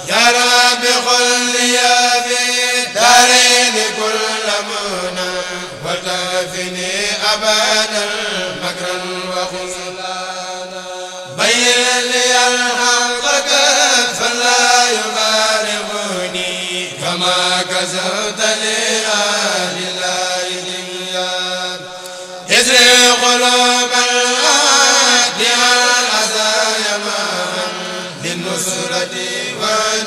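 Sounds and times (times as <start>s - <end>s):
men chanting in unison: 0.0s - 30.0s.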